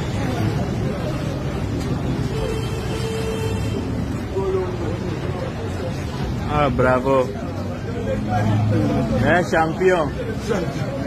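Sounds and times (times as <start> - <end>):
people's voices: 0.0 - 11.0
traffic rumble: 0.0 - 11.0.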